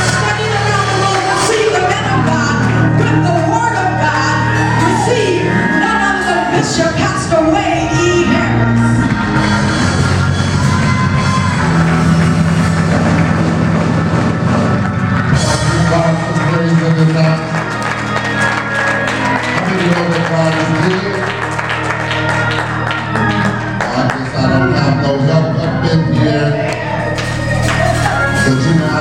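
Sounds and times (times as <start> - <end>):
live worship band playing: 0.0 - 29.0
low bass line: 0.0 - 29.0
drums: 8.7 - 16.5.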